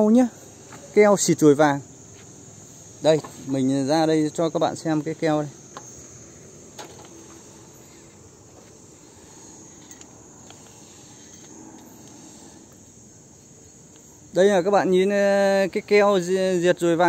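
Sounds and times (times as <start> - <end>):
insects chirring high-pitched: 0.0 - 17.0.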